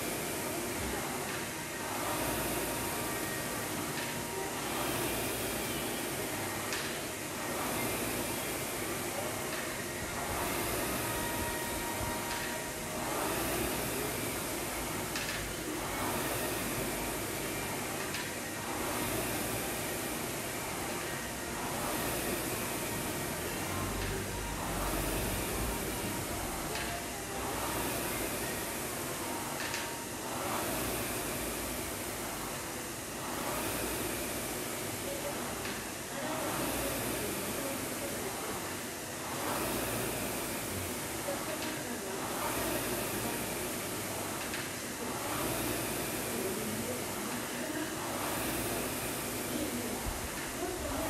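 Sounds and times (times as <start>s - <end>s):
rowing machine fan whooshing: 0.0s - 51.0s.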